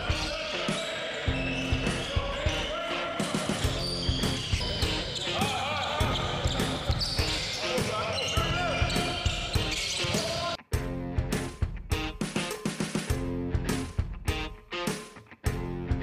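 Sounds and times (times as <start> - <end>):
music playing: 0.0 - 16.0
basketballs bouncing on court floor: 3.6 - 10.5.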